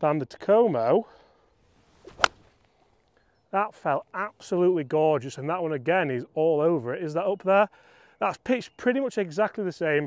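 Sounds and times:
golf club swish: 0:01.7 - 0:02.7
golf club striking ball: 0:02.0 - 0:02.5.

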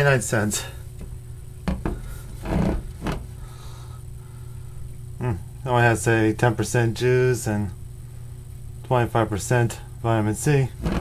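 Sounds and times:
laundry machine humming: 0:00.0 - 0:11.0.

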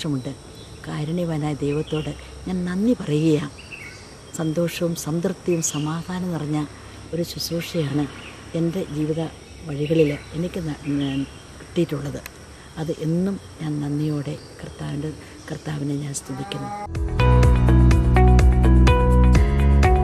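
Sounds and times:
woman talking: 0:00.0 - 0:03.6, 0:04.3 - 0:16.9
insects chirring: 0:00.0 - 0:16.9.

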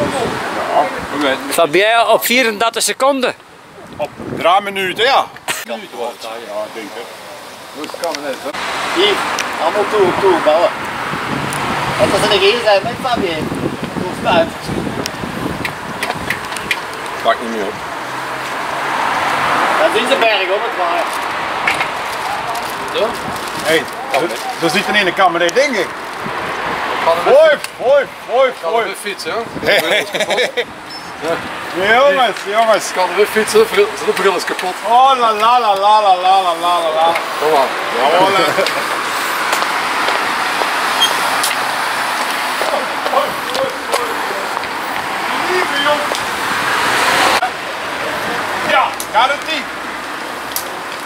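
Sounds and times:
wind rushing over microphone: 0:00.0 - 0:01.5, 0:03.6 - 0:05.5, 0:08.7 - 0:19.9, 0:21.0 - 0:24.0, 0:24.6 - 0:29.8
road and wind noise: 0:00.0 - 0:51.0.

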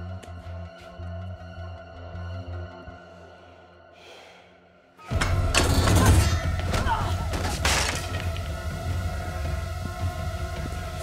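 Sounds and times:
quiet film score: 0:00.0 - 0:11.0
low rumble of music: 0:05.1 - 0:11.0.

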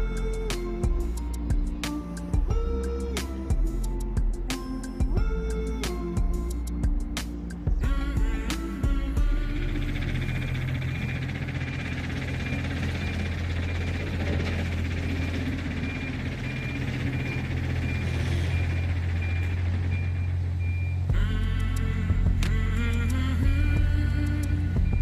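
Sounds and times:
diesel engine rumbling: 0:00.0 - 0:25.0
reversing alarm beeps: 0:09.6 - 0:21.1, 0:24.3 - 0:25.0.

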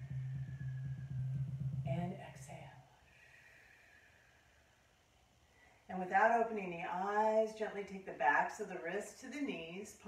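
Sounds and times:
steady low-pitched hum: 0:00.0 - 0:02.9.

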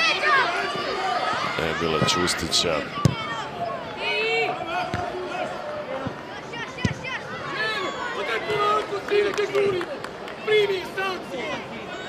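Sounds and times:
players shouting: 0:00.0 - 0:09.8.

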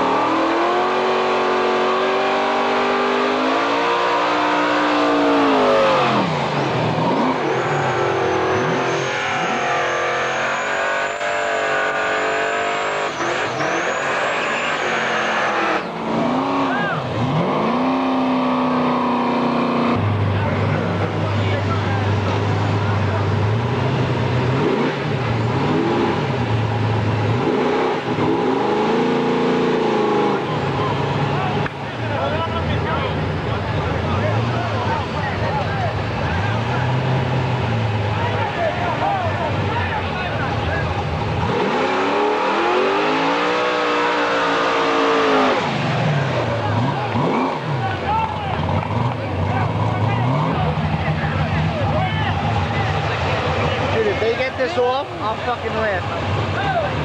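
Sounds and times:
cars revving and accelerating: 0:00.0 - 0:57.0.

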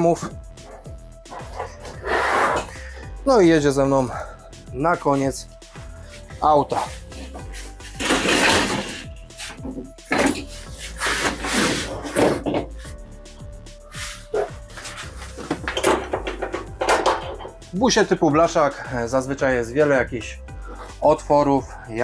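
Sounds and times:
background music: 0:00.0 - 0:22.0
heavy case knocking and scraping: 0:06.9 - 0:12.8, 0:14.4 - 0:17.6.

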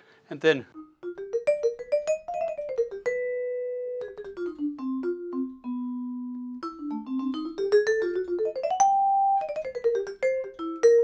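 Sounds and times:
vibraphone notes: 0:00.7 - 0:11.0.

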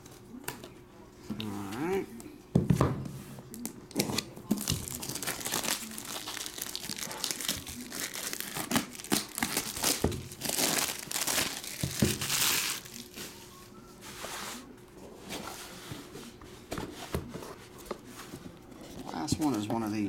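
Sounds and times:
plastic wrap crinkling and tearing: 0:03.5 - 0:13.2.

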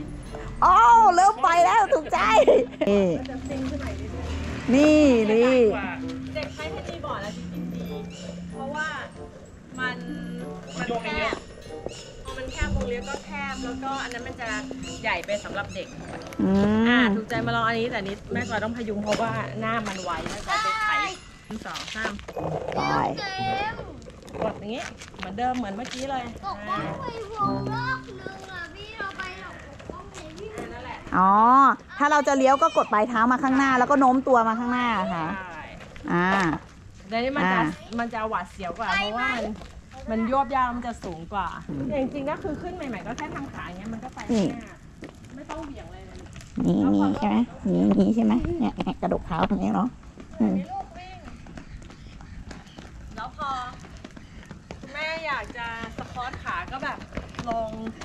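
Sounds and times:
adult and children talking: 0:00.5 - 0:54.0
skateboard wheels rolling on concrete: 0:10.7 - 0:58.0.

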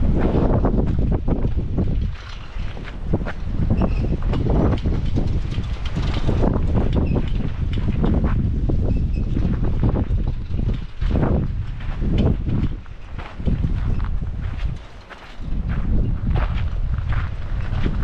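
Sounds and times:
footsteps on gravel: 0:00.0 - 0:18.0
wind buffeting microphone: 0:00.0 - 0:18.0.

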